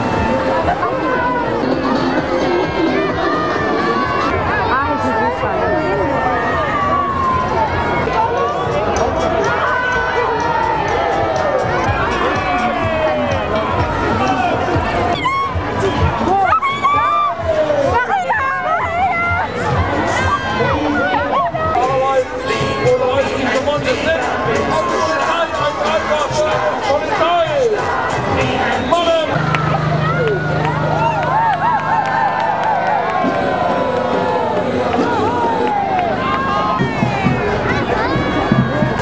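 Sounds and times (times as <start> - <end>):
crowd voices talking and calling: 0.0 - 39.0
music with low regular beat: 8.8 - 16.4, 19.3 - 35.2
vehicle engine running: 21.8 - 39.0.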